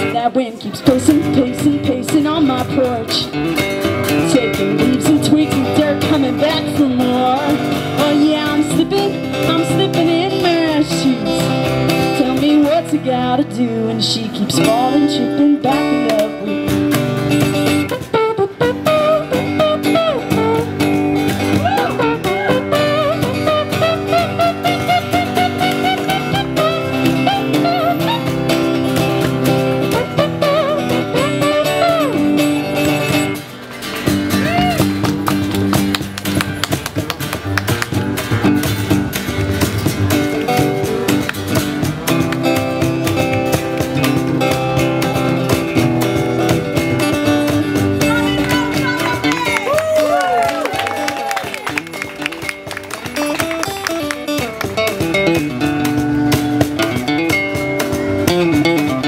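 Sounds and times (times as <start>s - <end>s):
strummed acoustic guitars: 0.0s - 49.7s, 50.7s - 59.0s
upright bass: 0.0s - 59.0s
sliding lead melody: 0.8s - 59.0s
cajon: 16.0s - 59.0s.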